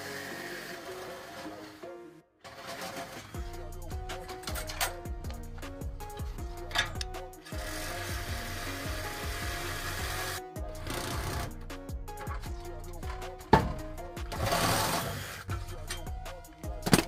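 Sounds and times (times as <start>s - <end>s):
reciprocating saw cutting metal: 0.0s - 5.0s, 6.8s - 11.6s, 14.2s - 16.1s.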